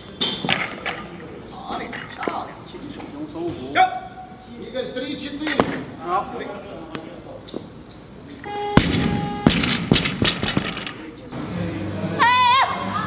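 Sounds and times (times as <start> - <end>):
voices in echoing hall: 0.0 - 13.0.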